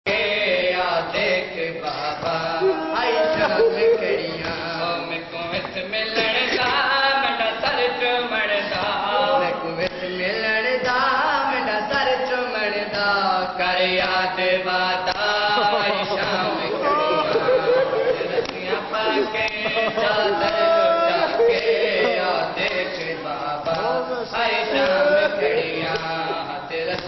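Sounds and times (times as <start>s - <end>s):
young men chanting into microphone: 0.1s - 27.0s.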